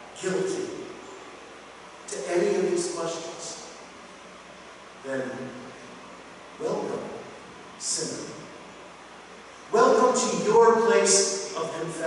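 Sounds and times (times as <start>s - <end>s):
man preaching: 0.2s - 1.0s, 2.1s - 3.8s, 5.0s - 5.8s, 6.6s - 8.5s, 9.7s - 12.0s.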